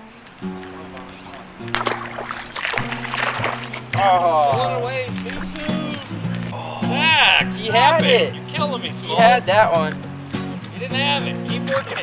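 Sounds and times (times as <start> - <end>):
acoustic guitar music: 0.0 - 12.0
water splashing: 0.0 - 12.0.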